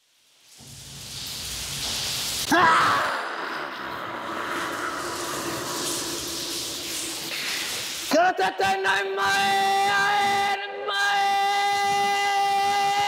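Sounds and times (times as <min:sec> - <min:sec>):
rushing hissing noise: 0:00.0 - 0:08.2.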